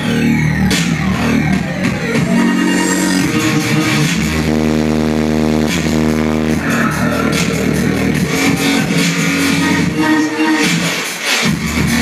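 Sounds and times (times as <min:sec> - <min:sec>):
dubstep heavy synth bass: 0:00.0 - 0:12.0.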